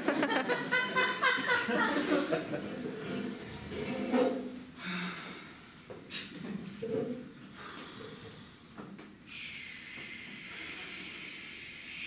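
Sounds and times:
person making a shushing hiss: 9.3s - 12.0s.

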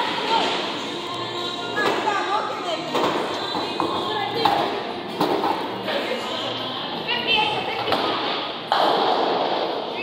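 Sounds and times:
background chatter: 0.0s - 8.7s.

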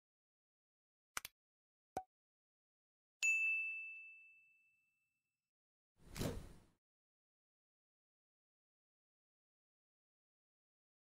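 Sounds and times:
bell-like ding: 3.2s - 5.1s.

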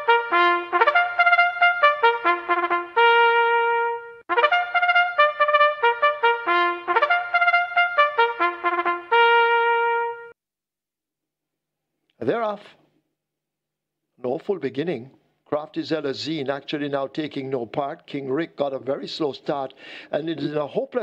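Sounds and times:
trumpet fanfare: 0.0s - 10.4s.

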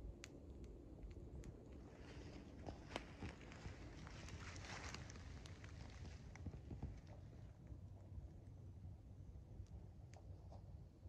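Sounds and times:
footsteps on dry leaves: 1.9s - 6.2s.

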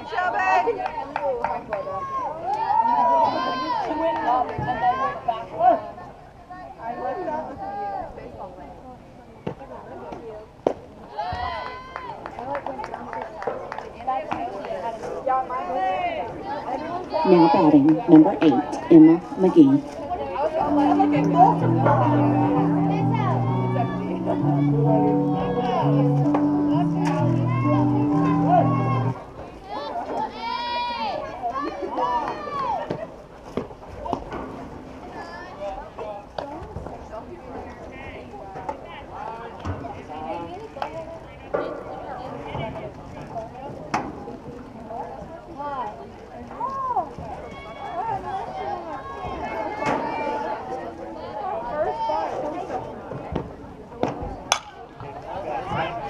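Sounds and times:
faint voices: 0.0s - 56.0s
spectators calling out: 20.6s - 29.3s
bat striking ball: 54.5s - 54.8s.

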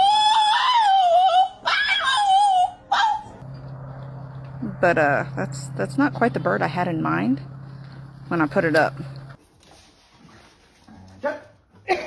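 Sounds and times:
dog whining: 0.0s - 3.4s
steady low hum: 3.3s - 9.4s.

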